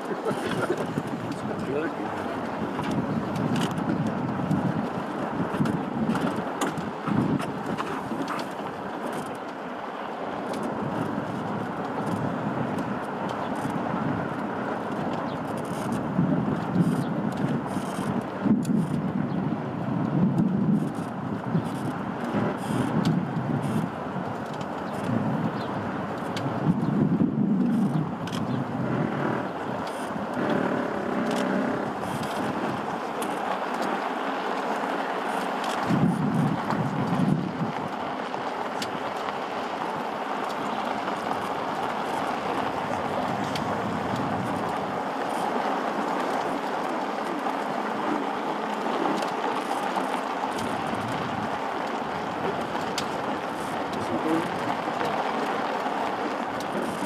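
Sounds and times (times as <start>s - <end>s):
golf cart driving on dirt: 0.0s - 57.0s.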